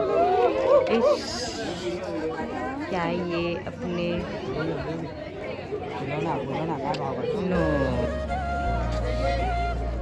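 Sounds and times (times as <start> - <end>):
people chatting: 0.9 - 8.2.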